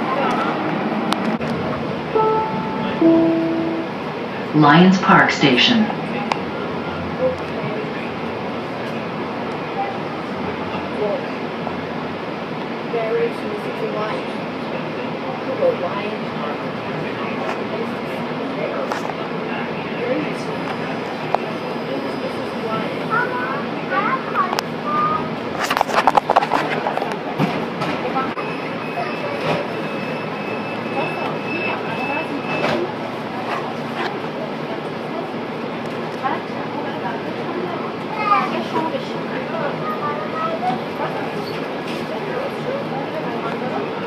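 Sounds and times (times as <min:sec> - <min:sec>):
passengers' voices: 0:00.0 - 0:44.0
train car hum: 0:00.0 - 0:44.0
thin high tone: 0:02.2 - 0:05.0.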